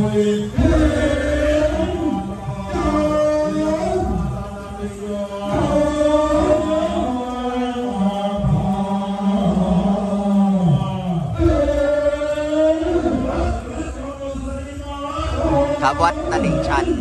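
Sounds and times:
monks chanting in unison: 0.0s - 17.0s.

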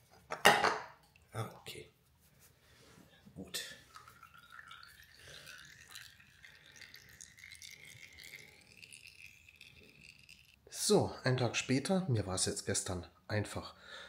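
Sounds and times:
oil dripping into pan: 3.9s - 10.7s.

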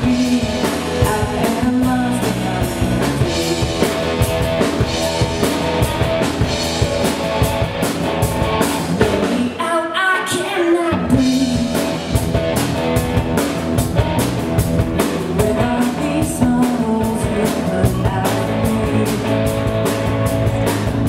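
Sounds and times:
drum kit beat: 0.0s - 9.6s, 10.2s - 21.0s
electric guitars: 0.0s - 21.0s
rock band playing: 0.0s - 21.0s.

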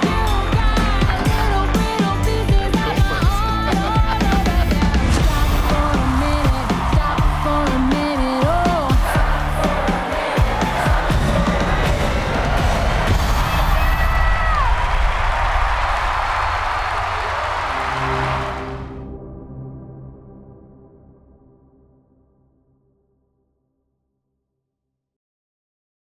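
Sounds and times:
pop song with woman singing: 0.0s - 11.1s
arena crowd cheering: 0.0s - 19.0s.

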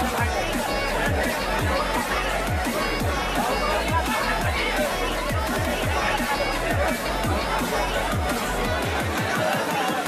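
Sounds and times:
crowd chattering: 0.0s - 10.0s
electronic music with deep bass: 0.0s - 10.0s.

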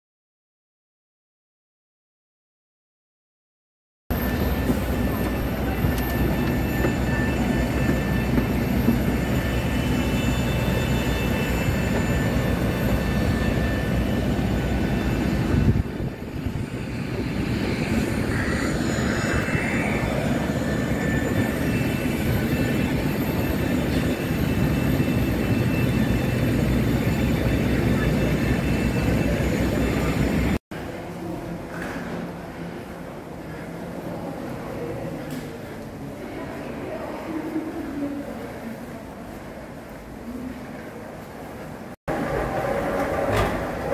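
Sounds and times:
jet aircraft rumble and hiss: 4.1s - 38.7s.

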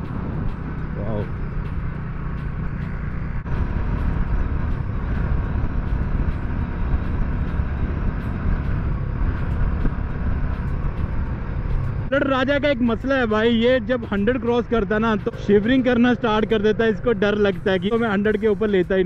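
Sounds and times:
wind rushing over microphone: 0.0s - 12.1s
motorcycle engine running: 0.0s - 18.9s.

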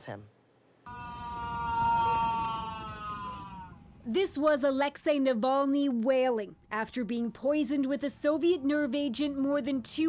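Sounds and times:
man wailing in pain: 0.9s - 3.8s
airliner cabin hum: 0.9s - 4.9s.

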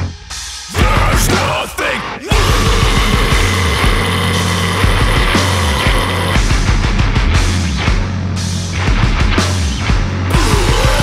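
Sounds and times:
heavy rock band playing: 0.0s - 11.0s
fast dense drumming: 0.7s - 8.1s, 10.3s - 11.0s
held low bass notes: 2.3s - 8.3s.

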